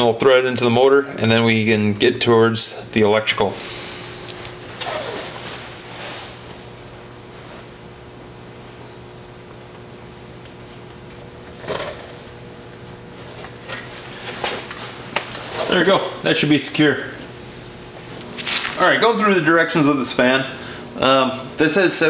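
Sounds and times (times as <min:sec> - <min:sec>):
steady electrical hum: 0:00.0 - 0:22.0.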